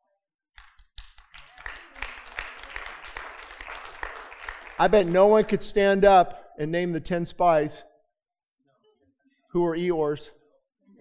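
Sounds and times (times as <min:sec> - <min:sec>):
congregation applauding: 0:00.6 - 0:06.0.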